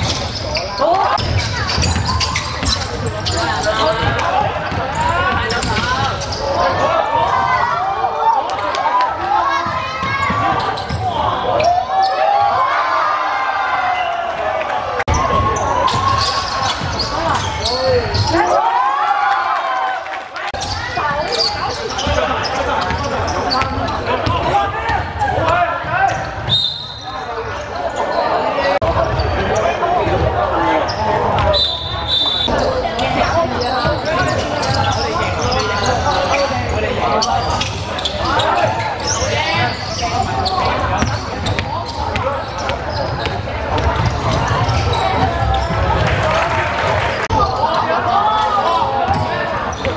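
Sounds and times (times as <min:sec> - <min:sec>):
players' voices calling: 0:00.0 - 0:19.0, 0:20.4 - 0:49.9
referee's whistle blasts: 0:26.4 - 0:27.2, 0:31.4 - 0:32.7
basketball bouncing on gym floor: 0:41.0 - 0:46.2.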